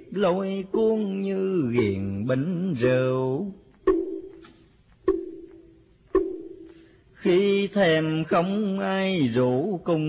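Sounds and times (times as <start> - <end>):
wooden fish knocking: 3.9 - 4.5, 5.1 - 5.6.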